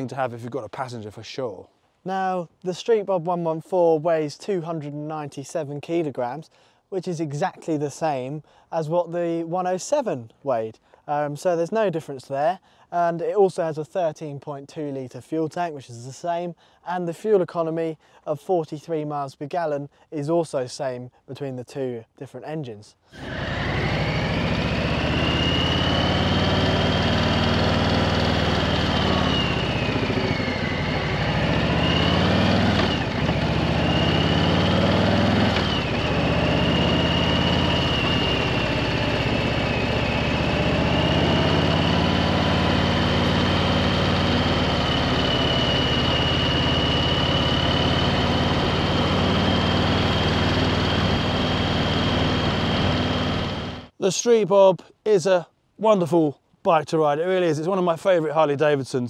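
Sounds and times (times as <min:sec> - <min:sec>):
motorcycle engine running: 0:23.2 - 0:53.9.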